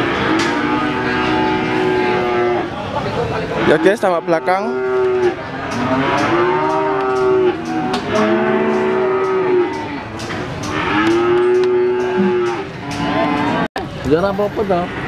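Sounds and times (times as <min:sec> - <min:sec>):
cattle mooing: 0:00.0 - 0:02.8, 0:03.5 - 0:13.7.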